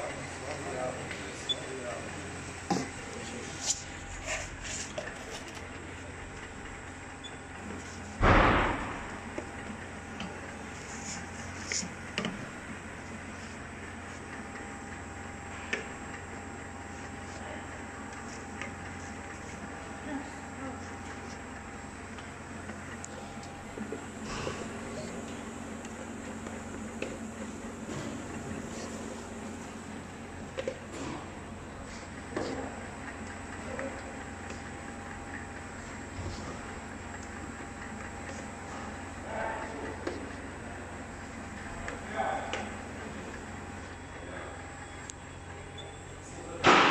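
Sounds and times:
conveyor and machinery hum: 0.0s - 46.9s.

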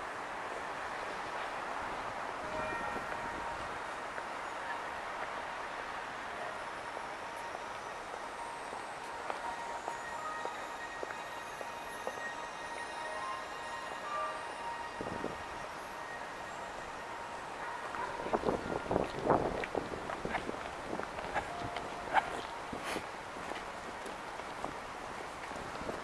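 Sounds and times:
city hubbub: 0.0s - 26.0s.

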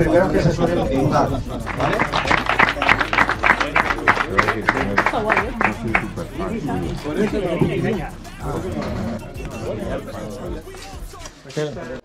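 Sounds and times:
background music: 0.0s - 12.0s
few people clapping: 1.6s - 7.0s.

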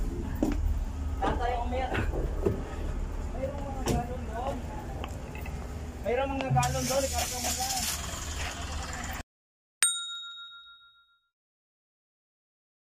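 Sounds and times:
outdoor background: 0.0s - 9.2s
person talking: 6.0s - 7.9s
bright bell ding: 9.8s - 11.3s.

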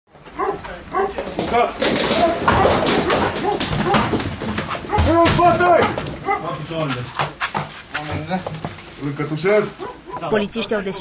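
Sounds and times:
dog barking and whimpering: 0.3s - 1.2s, 2.2s - 4.1s, 5.8s - 6.5s, 9.8s - 10.4s
sharp knocks: 1.2s - 6.5s
people's voices: 10.1s - 11.0s.

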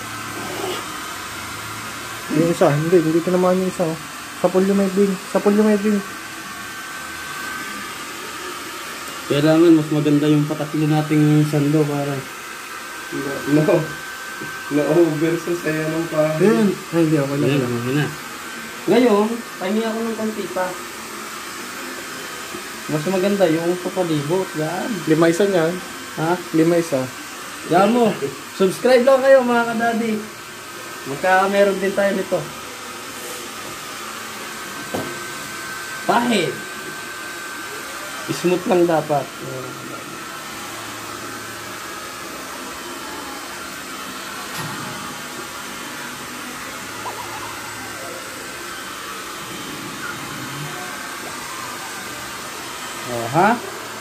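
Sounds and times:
electric blower rushing: 0.0s - 54.0s.

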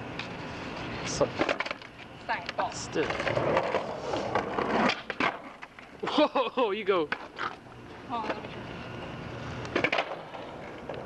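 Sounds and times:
skateboard wheels rolling on pavement: 0.0s - 11.0s
skateboard clacks: 1.4s - 5.9s, 9.6s - 11.0s.

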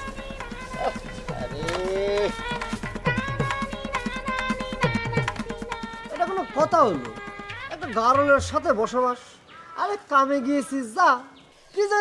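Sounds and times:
background music with drums: 0.0s - 9.0s.

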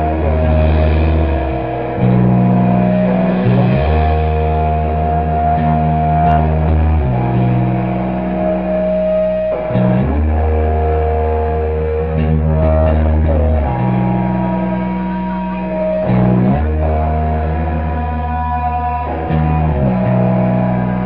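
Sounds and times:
rock band playing: 0.0s - 21.0s.

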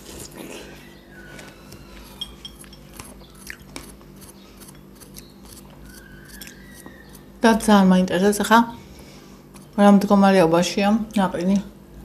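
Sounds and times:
chewing and biting watermelon: 0.0s - 7.3s
faint steady hum: 0.0s - 12.0s.

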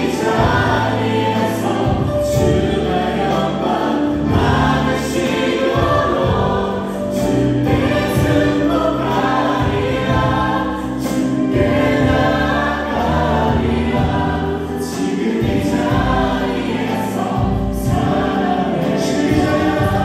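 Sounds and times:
band playing: 0.0s - 20.0s
singers singing together: 0.0s - 20.0s.

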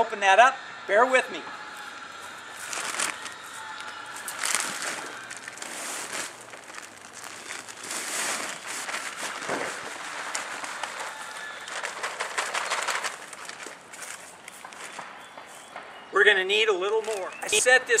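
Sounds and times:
plastic bag rustling: 1.7s - 15.6s
soil sliding into plastic sandbox: 7.3s - 10.7s.

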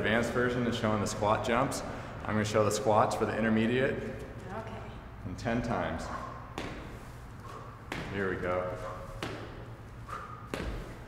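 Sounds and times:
feet thudding on floor: 6.5s - 8.2s, 10.5s - 11.0s.

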